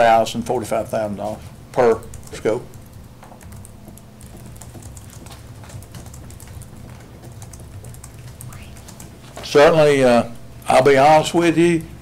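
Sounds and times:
low room hum: 0.0 - 12.0
typing on a keyboard: 1.9 - 9.1.

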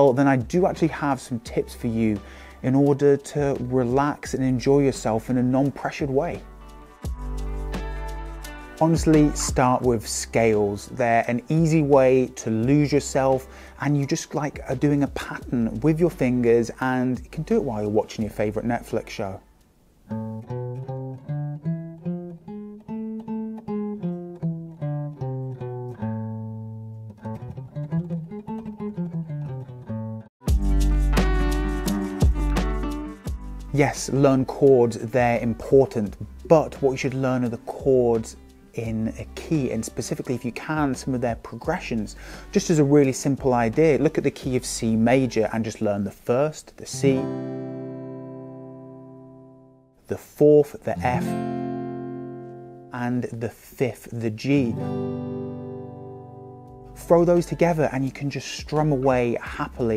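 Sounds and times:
acoustic guitar single notes: 6.4 - 9.8, 19.4 - 34.4, 47.0 - 49.9, 50.9 - 53.1, 54.6 - 58.0.

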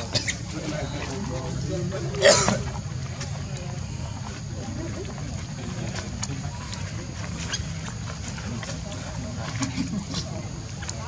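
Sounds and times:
faint indistinct voices: 0.0 - 11.0
steady low rumble: 0.0 - 11.0.

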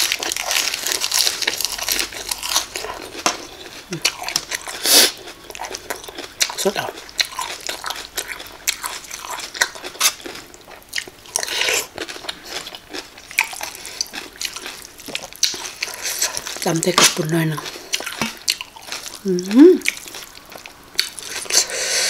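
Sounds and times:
person chewing crunchy food: 0.0 - 22.0.

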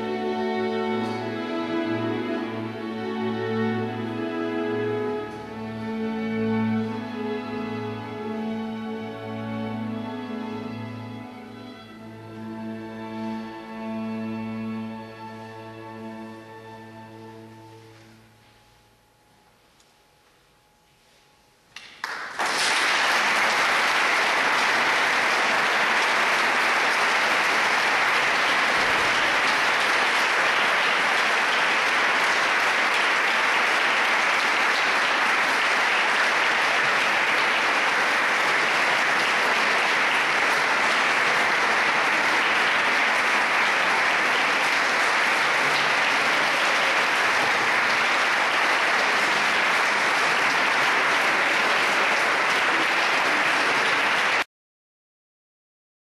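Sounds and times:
audience applauding: 21.8 - 54.5.

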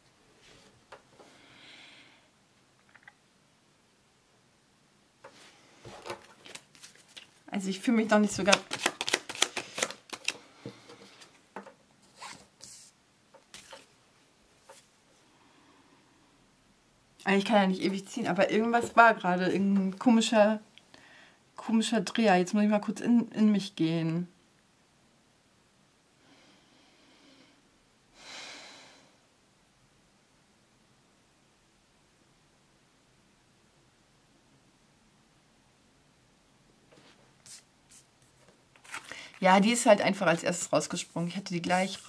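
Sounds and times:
person breathing: 1.2 - 2.4, 9.4 - 11.4, 15.2 - 16.4, 20.9 - 21.5, 26.2 - 29.2, 39.0 - 39.4
cards sliding and rustling: 5.3 - 7.4, 8.2 - 11.4, 12.0 - 13.9, 37.0 - 40.4
cards clicking while shuffled: 8.4 - 11.7.

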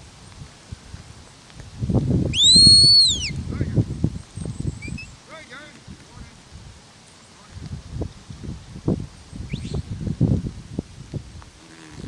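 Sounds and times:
shepherd's whistle: 2.3 - 3.4, 4.8 - 5.2, 9.5 - 9.8.

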